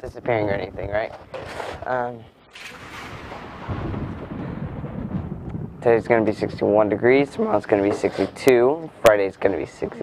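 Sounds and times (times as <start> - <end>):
hissing wash: 2.5 - 6.2
low rumble: 2.6 - 7.4.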